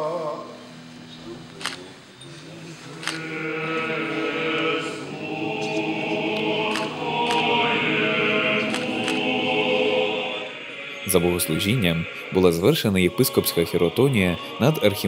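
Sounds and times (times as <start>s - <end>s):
choir singing a slow chant: 2.6s - 15.0s
sharp clicks: 6.7s - 7.5s.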